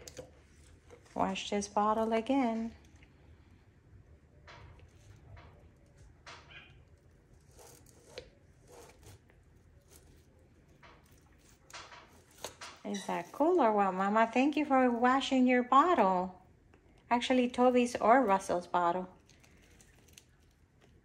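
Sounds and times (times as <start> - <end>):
bottle brush scraping plastic: 6.5 - 14.7.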